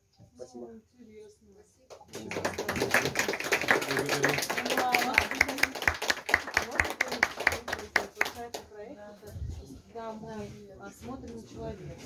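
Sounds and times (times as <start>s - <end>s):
small group applauding: 1.9s - 8.7s
people talking: 6.4s - 12.0s.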